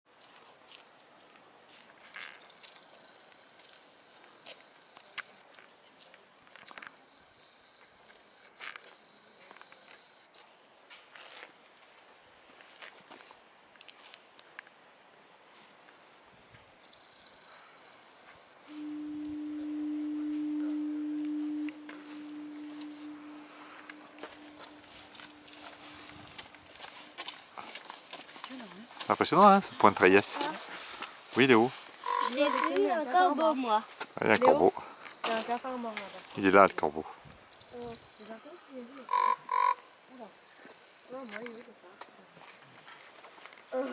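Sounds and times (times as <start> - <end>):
raven calls: 16.9 - 27.2, 32.0 - 33.0, 37.6 - 41.0
foghorn low note: 18.7 - 27.2, 32.0 - 32.8.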